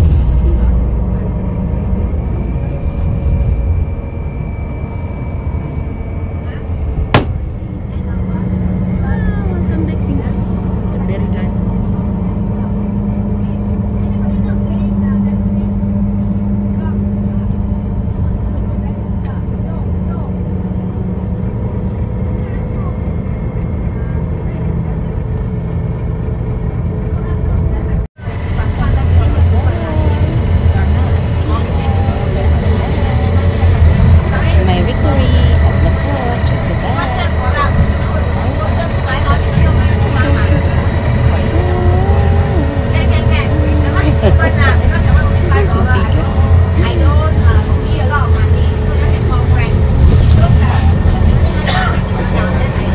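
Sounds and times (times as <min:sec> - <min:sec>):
faint passenger voices: 0:00.0 - 0:03.9, 0:06.2 - 0:52.9
engine and road drone: 0:00.0 - 0:52.9.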